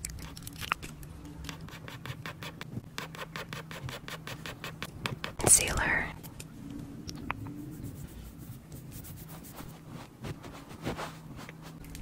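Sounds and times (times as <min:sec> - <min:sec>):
pencil scratching on pad: 0:01.5 - 0:05.8.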